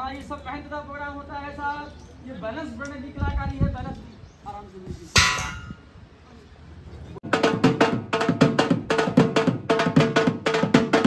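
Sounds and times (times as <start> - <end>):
loud metallic clang: 5.2 - 5.8.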